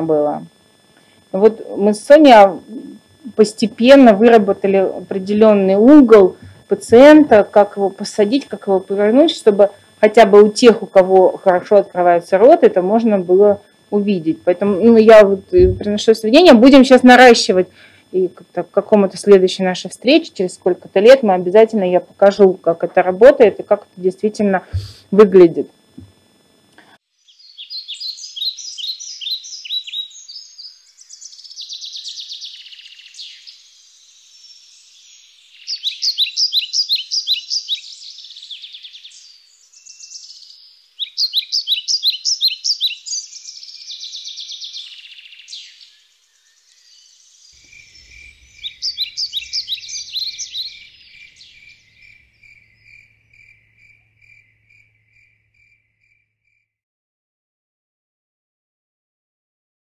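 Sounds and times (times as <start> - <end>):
cricket chirping: 0.0 - 56.7
birds chirping trills: 27.1 - 56.4.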